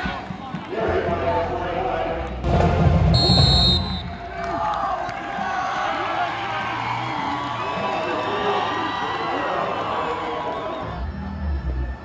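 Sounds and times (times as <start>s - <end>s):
crowd shouting and cheering: 0.0s - 12.0s
music: 0.0s - 12.0s.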